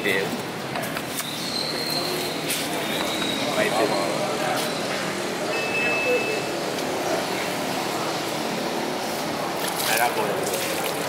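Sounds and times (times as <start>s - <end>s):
fish market background din: 0.0s - 11.0s.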